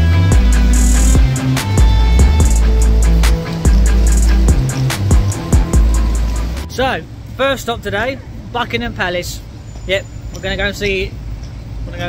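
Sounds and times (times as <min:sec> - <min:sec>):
drums: 0:00.0 - 0:06.8
guitar: 0:00.0 - 0:06.8
bass: 0:00.0 - 0:12.0.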